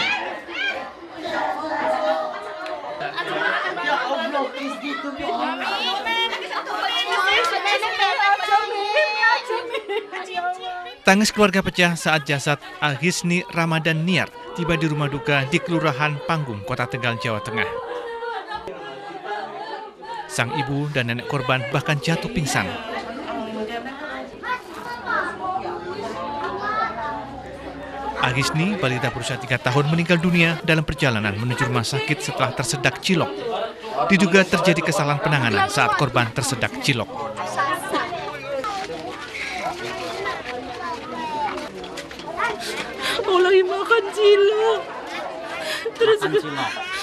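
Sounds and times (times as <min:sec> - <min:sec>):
crowd voices overlapping: 0:00.0 - 0:47.0
women crying and wailing: 0:11.8 - 0:23.6, 0:42.7 - 0:47.0.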